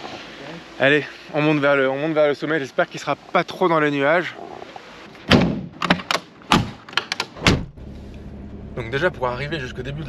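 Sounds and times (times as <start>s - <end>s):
car doors thumping shut: 5.2s - 7.8s
car engine running from inside: 7.7s - 10.0s.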